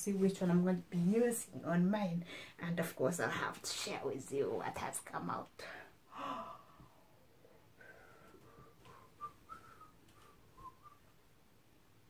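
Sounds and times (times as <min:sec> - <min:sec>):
breath: 0:02.3 - 0:02.6, 0:07.8 - 0:09.1
person whistling faintly: 0:08.8 - 0:11.1.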